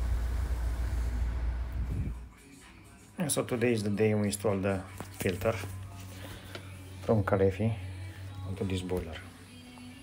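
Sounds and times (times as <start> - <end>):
steady low rumble: 0.0 - 2.3.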